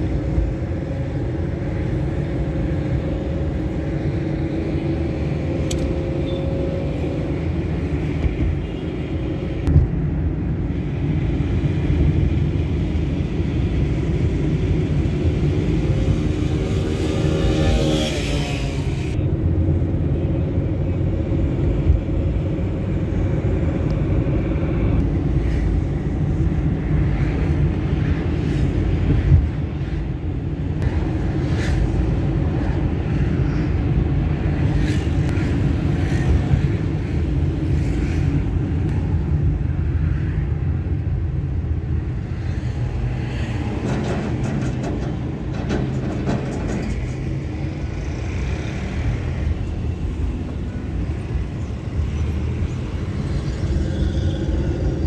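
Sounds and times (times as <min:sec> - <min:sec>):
vehicle engine and road rumble: 0:00.0 - 0:55.0.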